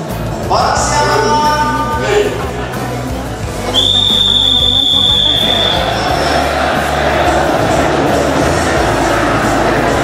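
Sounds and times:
crowd voices: 0.0 - 10.0
music: 0.0 - 10.0
long whistle blast: 3.7 - 5.9.

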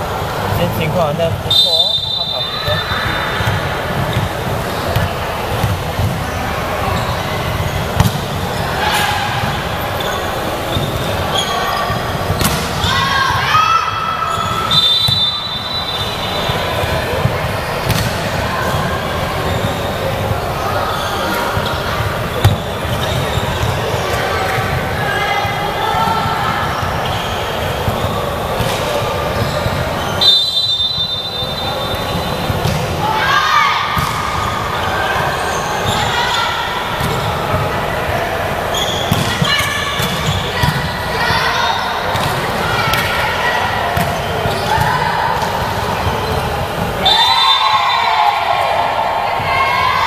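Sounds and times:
players' voices and calls: 0.0 - 50.0
referee's whistle: 1.4 - 3.6, 14.3 - 16.9, 29.4 - 32.5, 38.7 - 40.6, 47.0 - 48.0
volleyball struck and bouncing: 7.9 - 9.2, 12.3 - 12.9, 17.2 - 18.3, 33.9 - 34.4.

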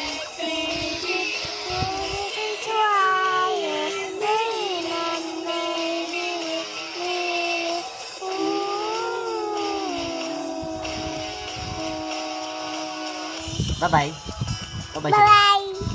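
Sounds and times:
high voice singing: 0.0 - 13.5, 15.1 - 15.9.

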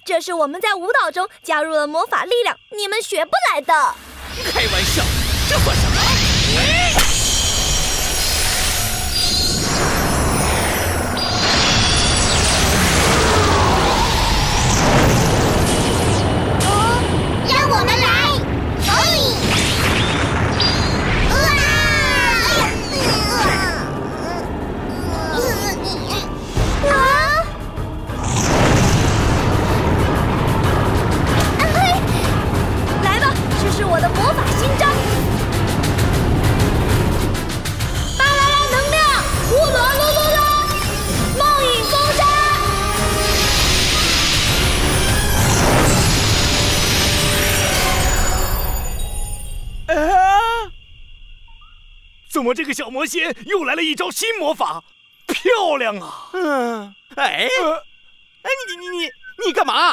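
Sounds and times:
rumbling background music: 4.0 - 49.1
cartoon creature squeaks: 20.6 - 26.3.

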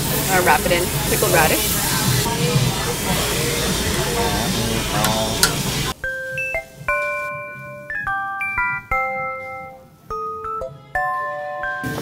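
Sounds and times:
meat sizzling on a grill: 0.0 - 6.0.

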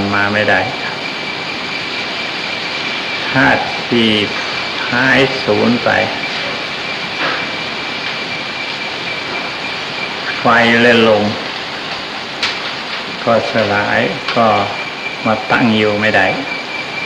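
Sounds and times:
tape hiss: 0.0 - 17.0
thin steady high tone: 0.0 - 17.0.

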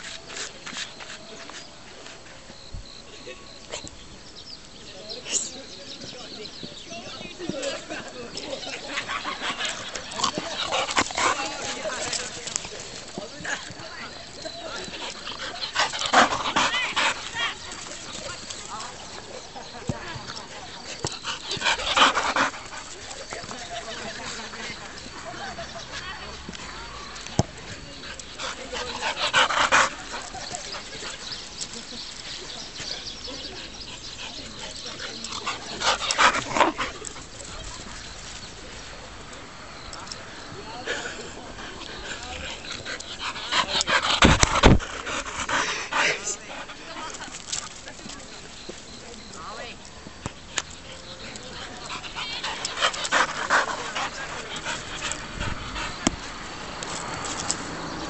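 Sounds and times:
dog panting: 7.5 - 26.2, 27.7 - 38.2, 40.5 - 58.0.

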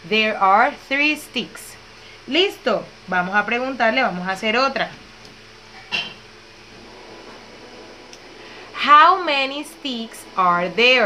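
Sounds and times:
woman's voice: 0.0 - 5.0, 8.7 - 11.0
room hiss: 0.0 - 11.0.

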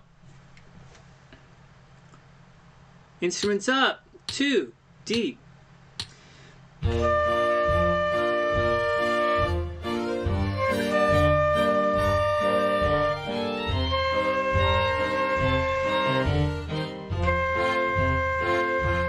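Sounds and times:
backing band with bass pulse: 6.8 - 19.0
flute long held notes: 6.9 - 19.0.

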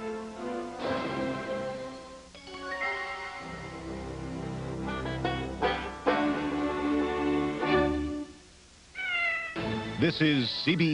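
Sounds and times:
music cue: 0.0 - 8.4
cat meow: 8.9 - 9.6.

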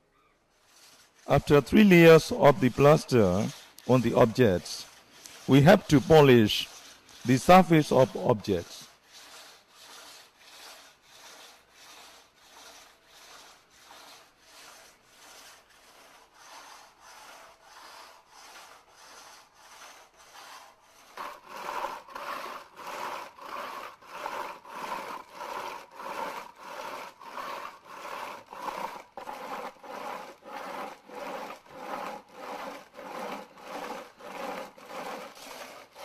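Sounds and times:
hand rubbing a lacquered surface: 0.6 - 36.0.

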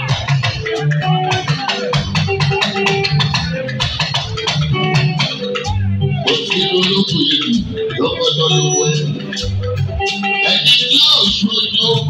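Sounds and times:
drums and percussion: 0.0 - 12.0
live band playing: 0.0 - 12.0.

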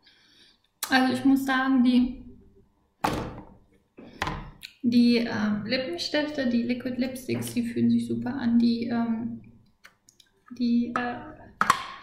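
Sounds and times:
woman's voice: 0.8 - 2.3, 4.8 - 9.5, 10.5 - 11.6.

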